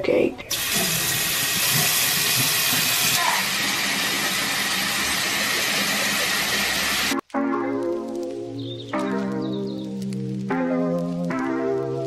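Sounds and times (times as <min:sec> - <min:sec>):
tap water pouring into sink: 0:00.5 - 0:07.1.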